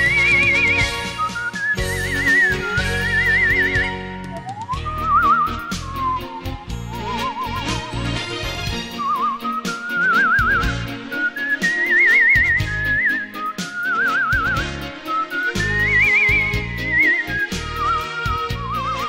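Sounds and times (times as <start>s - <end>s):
person whistling a melody: 0.0s - 8.2s, 8.9s - 19.0s
instrumental backing music: 0.0s - 19.0s.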